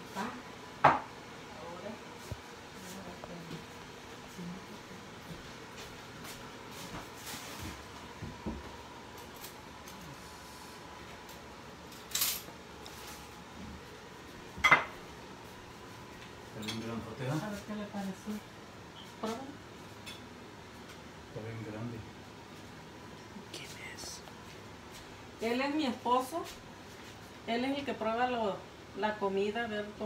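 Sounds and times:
plate and cutlery clinking: 14.6 - 15.0.

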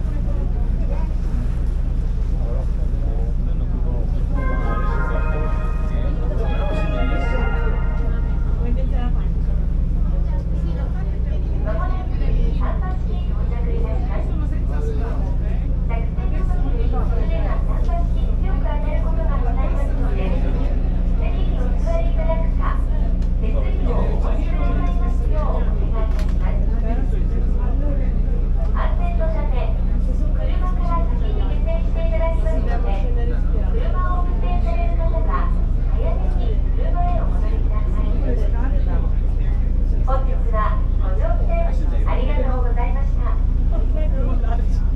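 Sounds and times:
ferry engine droning: 0.0 - 44.9
people talking: 0.0 - 44.9.

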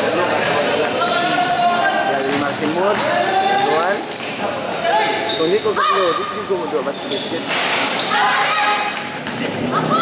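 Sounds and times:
broad rush of noise: 0.0 - 10.0
voices calling out: 0.0 - 10.0
basketball bouncing on court: 2.2 - 3.4.

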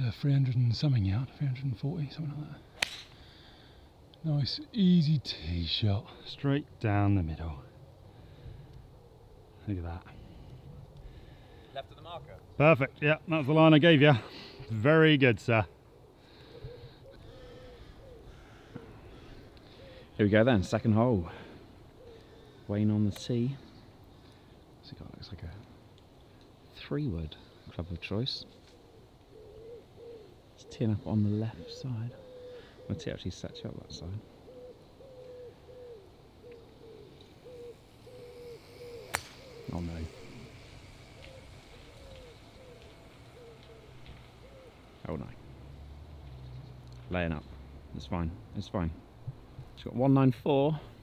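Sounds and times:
bird calling faintly: 0.9 - 51.0
pigeon cooing: 15.6 - 20.4, 21.3 - 22.7, 28.6 - 46.8.

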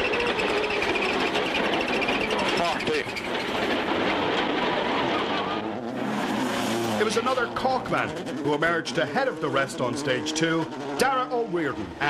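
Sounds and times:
rally car engine revving at speed: 0.0 - 12.0.

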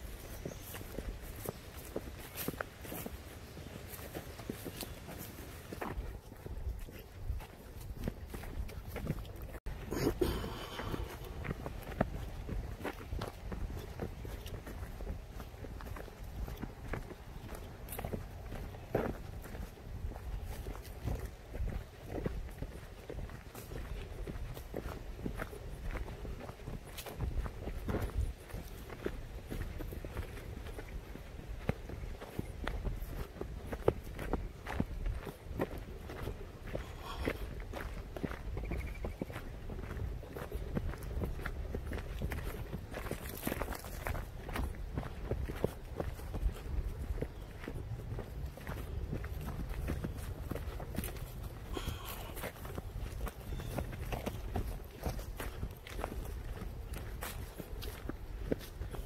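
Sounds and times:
footsteps on dirt path: 0.0 - 59.0.

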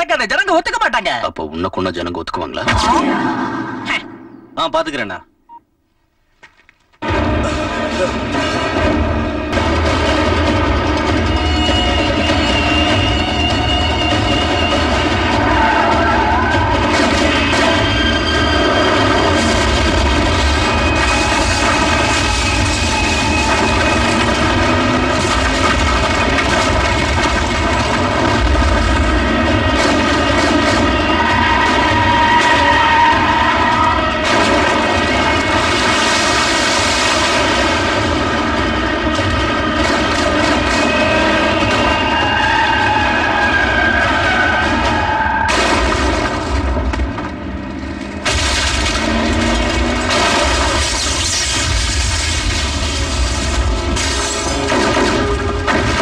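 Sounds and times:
explosion blast: 2.6 - 4.7, 14.5 - 42.9, 44.6 - 47.2, 48.2 - 56.0
vehicle engine drone: 46.2 - 53.9.

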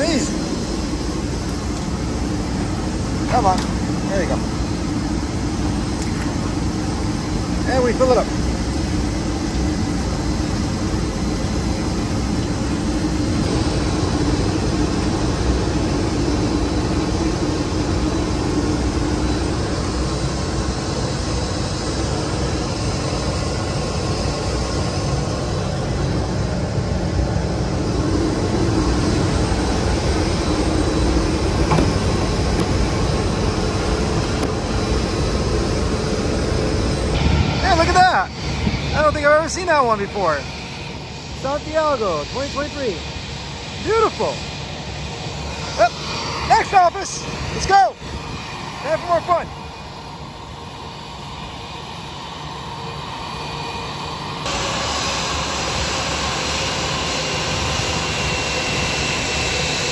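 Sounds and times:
airport ramp rushing noise: 0.0 - 50.4.

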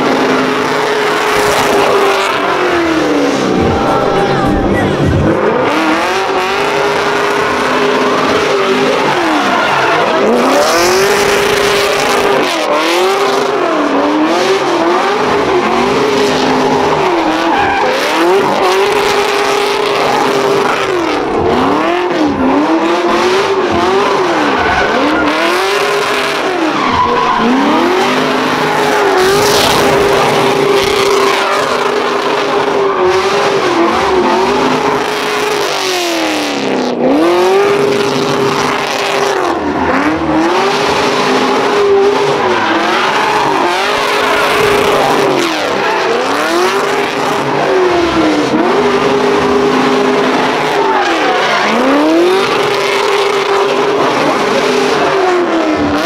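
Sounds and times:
car engine revving high: 0.0 - 56.0
tyres squealing: 0.8 - 13.0, 14.2 - 21.7, 23.2 - 36.2, 38.2 - 55.9.

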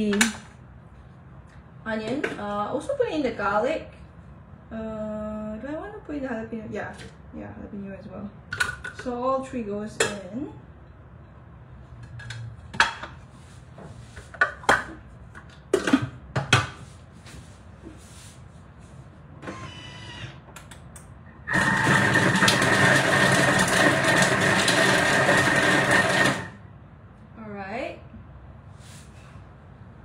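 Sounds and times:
food processor blade spinning: 21.5 - 26.6.

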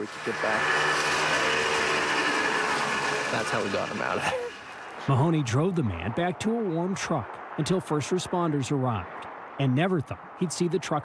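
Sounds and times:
mechanical drone: 0.0 - 5.0
high whine: 0.0 - 5.4.

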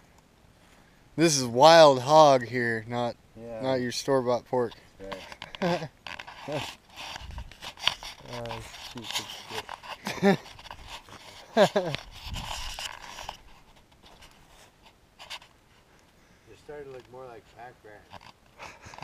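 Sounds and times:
men laughing: 5.4 - 6.0, 10.0 - 10.6, 11.3 - 12.1.

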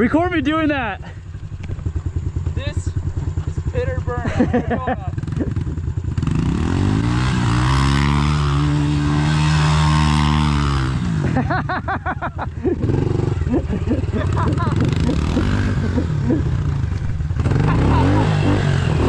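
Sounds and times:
voices: 2.4 - 5.6, 17.5 - 18.6
small motorbike engine revving: 3.2 - 11.7, 12.6 - 19.0.

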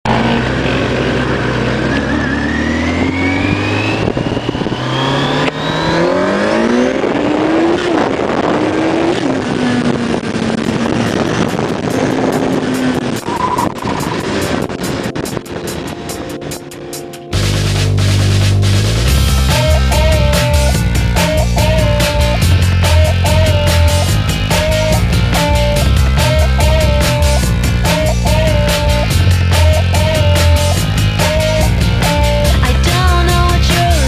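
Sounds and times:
motorcycle engine revving: 0.0 - 15.9, 17.4 - 34.0
wind noise: 2.8 - 16.9
music with a steady beat: 12.2 - 34.0.

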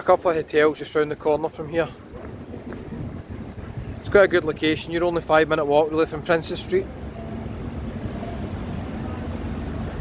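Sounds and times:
road traffic rumble: 0.0 - 10.0
faint engine hum: 5.2 - 10.0.

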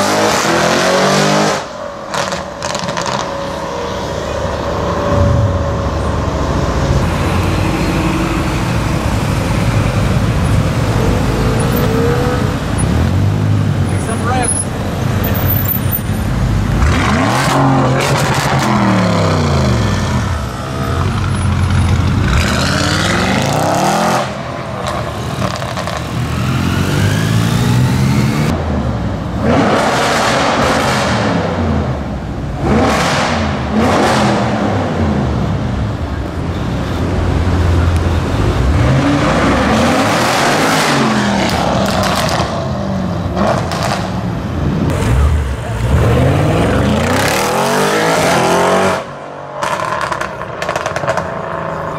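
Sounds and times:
loud car engine revving: 0.0 - 15.5, 16.5 - 28.7, 29.3 - 35.9, 37.2 - 51.9.

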